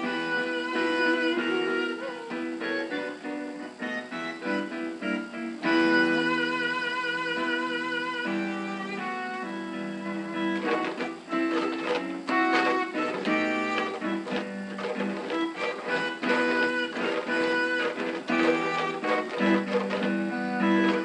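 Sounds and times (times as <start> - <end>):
slow piano tune: 0.0 - 21.0.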